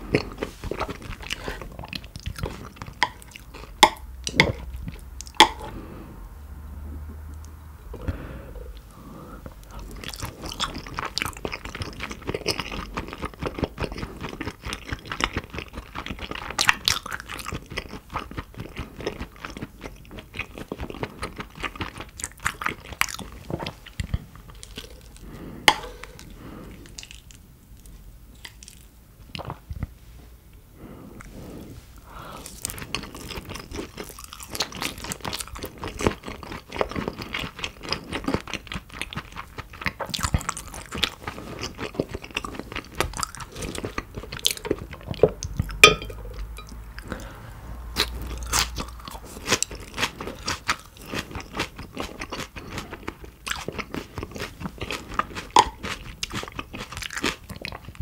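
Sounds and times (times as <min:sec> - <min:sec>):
wet chewing mouth sounds: 0:00.0 - 0:05.7, 0:08.8 - 0:27.4, 0:31.1 - 0:58.0.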